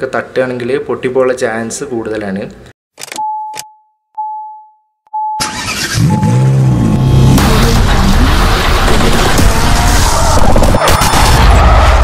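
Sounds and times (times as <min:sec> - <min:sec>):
engine revving effect: 0:05.4 - 0:12.0
loud burst of music: 0:06.8 - 0:12.0.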